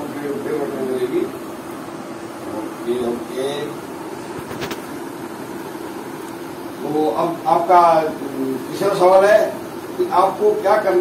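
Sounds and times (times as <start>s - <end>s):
room noise hum and hiss: 0.0s - 11.0s.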